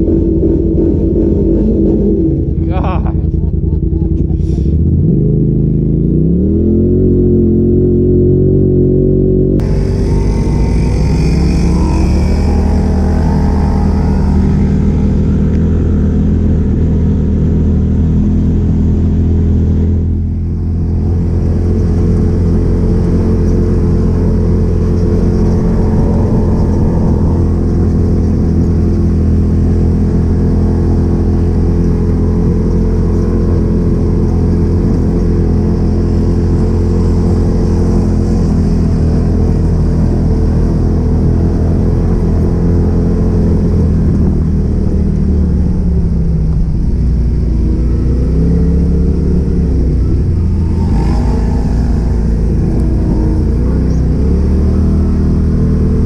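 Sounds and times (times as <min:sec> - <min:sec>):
vehicle engine revving: 0:00.0 - 0:56.0.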